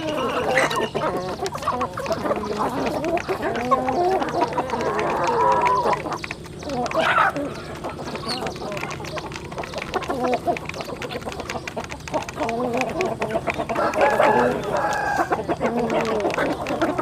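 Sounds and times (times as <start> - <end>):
beaks pecking grain from plastic: 0.0 - 17.0
chickens clucking: 0.0 - 17.0.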